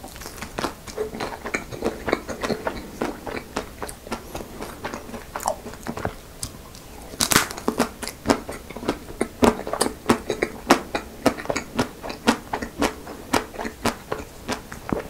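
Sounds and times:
chocolate shell cracking and crunching: 0:06.4 - 0:08.2.

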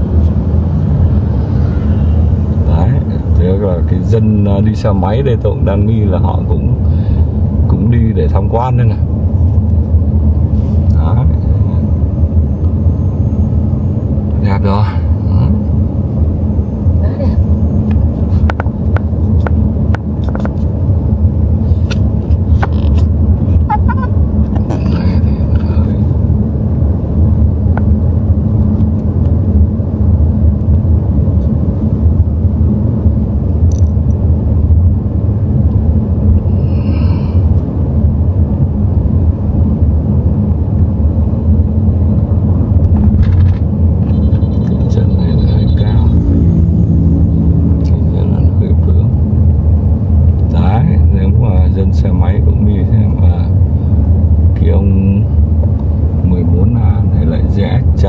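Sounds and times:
road and tyre noise in car: 0:00.0 - 0:58.0.

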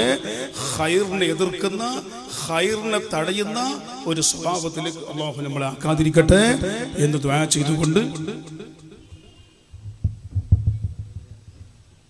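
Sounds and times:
low thumps: 0:09.8 - 0:11.9.

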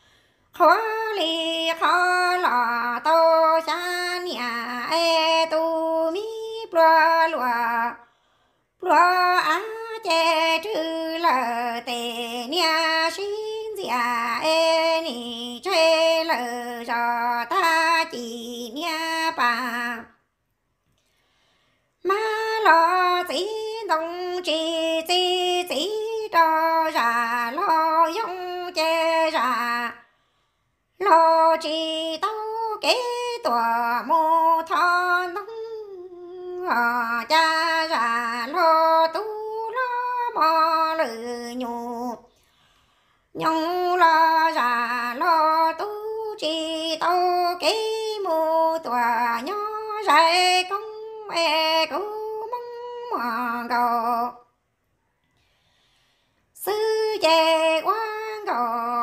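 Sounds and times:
woman singing unaccompanied: 0:00.0 - 0:08.1, 0:08.7 - 0:20.3, 0:22.0 - 0:30.1, 0:30.9 - 0:42.4, 0:43.3 - 0:54.5, 0:56.5 - 0:59.0.

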